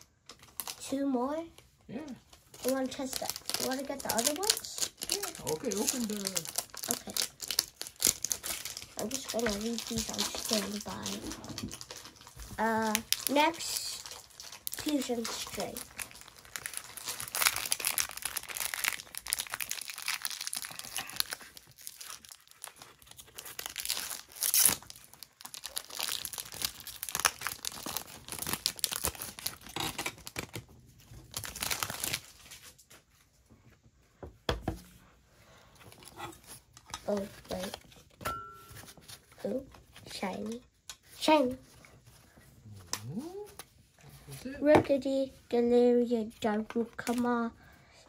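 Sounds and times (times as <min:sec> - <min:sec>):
plastic wrapping crackling: 0:00.1 - 0:01.7, 0:02.3 - 0:33.3, 0:35.8 - 0:43.7, 0:46.3 - 0:47.5.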